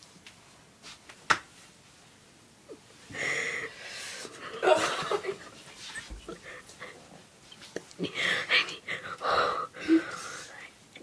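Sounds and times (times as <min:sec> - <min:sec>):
woman stifled laughter: 0:04.4 - 0:06.5
woman breathy whimpering: 0:08.0 - 0:10.6.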